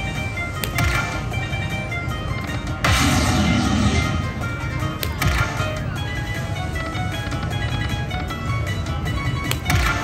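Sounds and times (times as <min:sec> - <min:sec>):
slot machine electronic music: 0:00.0 - 0:10.0.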